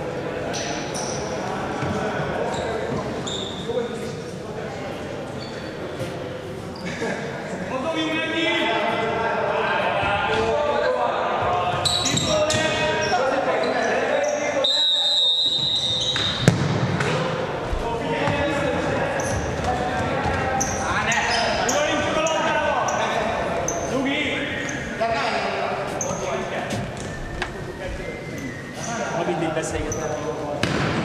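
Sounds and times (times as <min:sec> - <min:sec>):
shoe squeaks on wooden floor: 0:02.5 - 0:03.7, 0:11.8 - 0:13.9, 0:15.2 - 0:16.5, 0:20.3 - 0:24.9, 0:25.8 - 0:30.4
whistle blast: 0:14.6 - 0:16.4
ball being struck: 0:16.2 - 0:17.2.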